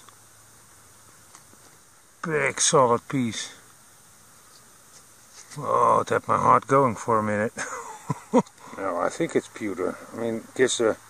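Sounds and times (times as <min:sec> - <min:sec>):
small ticks: 0:00.0 - 0:01.9, 0:04.4 - 0:05.6, 0:08.3 - 0:08.8
steady low hiss: 0:00.0 - 0:11.0.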